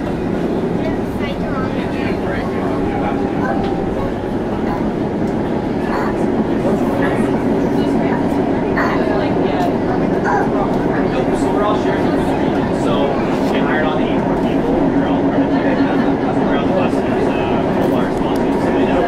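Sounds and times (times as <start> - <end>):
light rail car running rumble: 0.0 - 19.0.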